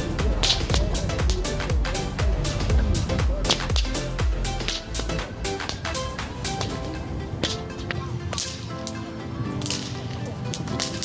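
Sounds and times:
background music: 0:00.0 - 0:11.0
whip cracking: 0:00.2 - 0:01.4, 0:03.4 - 0:04.0, 0:04.6 - 0:06.0, 0:07.4 - 0:07.7, 0:08.3 - 0:09.0, 0:09.6 - 0:11.0.

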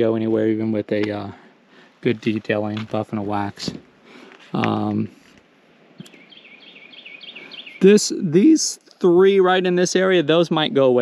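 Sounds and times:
songbird singing: 0:00.0 - 0:10.8.

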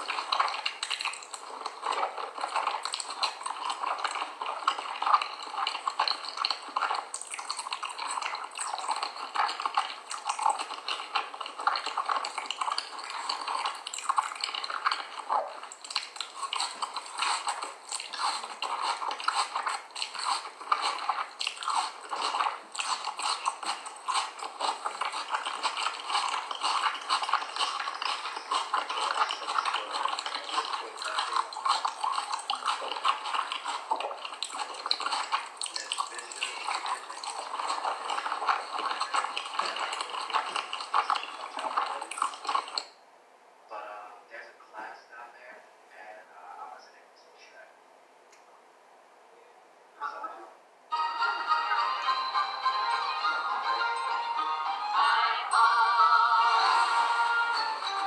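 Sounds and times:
chewing cornstarch crunching: 0:00.0 - 0:43.0, 0:52.3 - 0:58.0.

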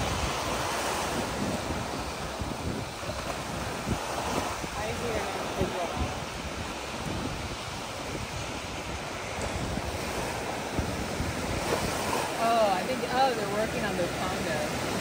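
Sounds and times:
small waves breaking on shore: 0:00.0 - 0:15.0
wind buffeting microphone: 0:00.0 - 0:15.0.

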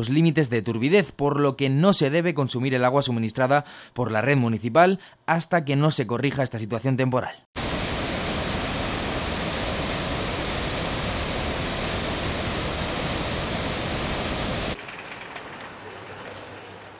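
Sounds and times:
outdoor background rush: 0:07.6 - 0:16.9.

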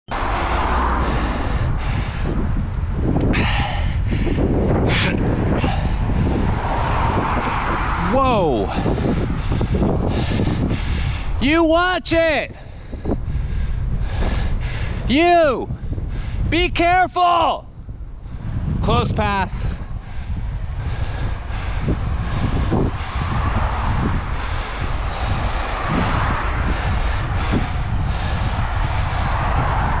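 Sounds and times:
tyre and road noise: 0:00.1 - 0:30.0
wind buffeting microphone: 0:00.1 - 0:30.0.

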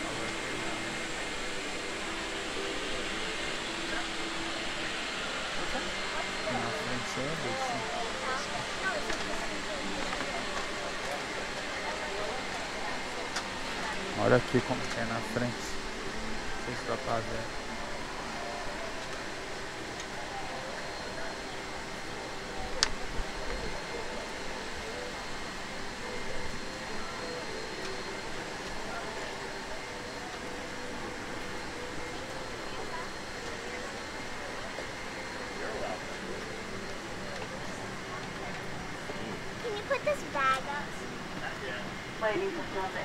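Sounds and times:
murmur of passengers talking: 0:00.0 - 0:43.0.

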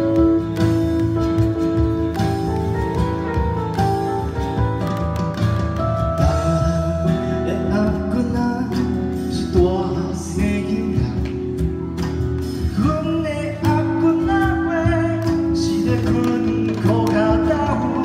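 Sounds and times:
drum kit playing: 0:00.0 - 0:18.0
guitar: 0:00.0 - 0:18.0
person singing: 0:06.2 - 0:11.7, 0:12.6 - 0:18.0.

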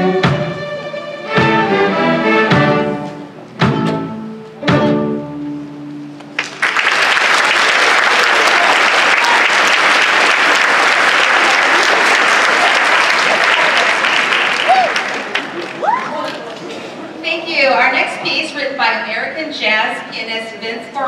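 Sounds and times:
string orchestra chord: 0:00.0 - 0:06.3
audience applause: 0:06.3 - 0:16.7.

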